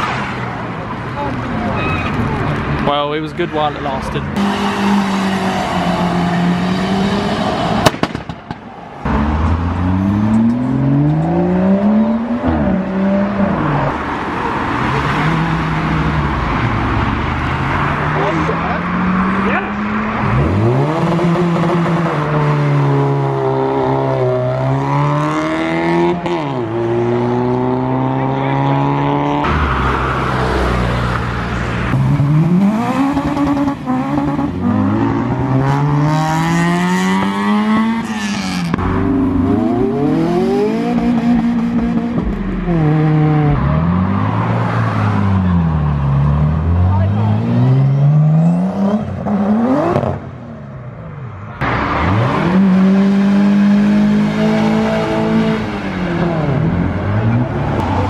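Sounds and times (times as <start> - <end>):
cars accelerating past: 3.6 - 50.8, 51.6 - 58.0
sharp bang: 7.8 - 8.7.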